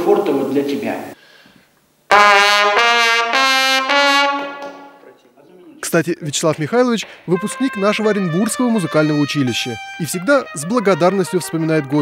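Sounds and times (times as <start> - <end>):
loud trumpet notes: 2.1 - 5.0, 7.3 - 12.0.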